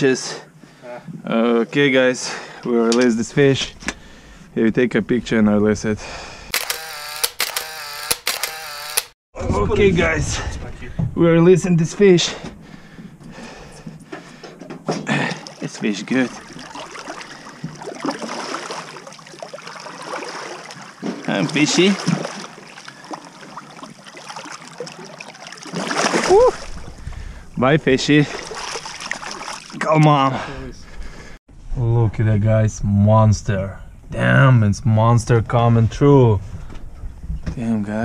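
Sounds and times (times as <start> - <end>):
camera shutter clicks: 6.6 - 9.1
water splashing and sloshing: 12.3 - 31.4.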